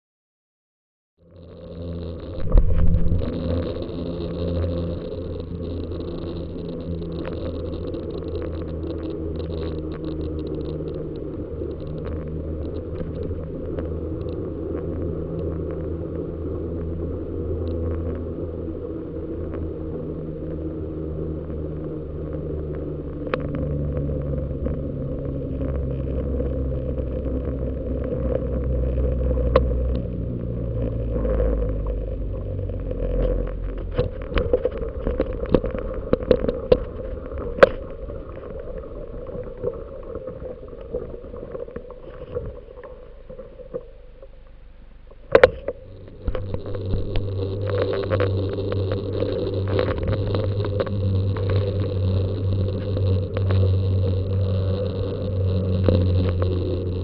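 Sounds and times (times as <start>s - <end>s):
bicycle tyres rolling on asphalt: 1.2s - 57.0s
wind on microphone: 1.8s - 39.0s, 45.3s - 57.0s.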